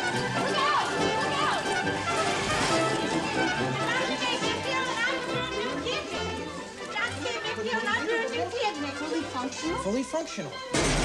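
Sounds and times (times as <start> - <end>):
children chattering and calling: 0.0 - 10.8
film score music: 0.0 - 11.0.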